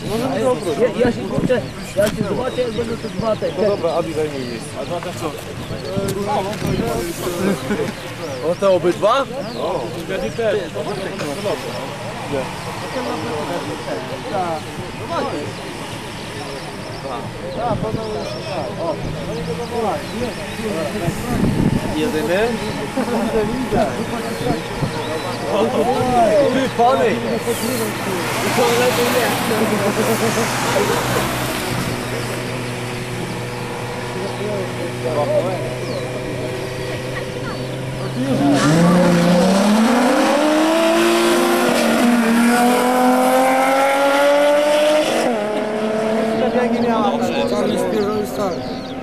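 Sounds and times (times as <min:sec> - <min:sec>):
car engines revving and accelerating: 0:00.0 - 0:49.0.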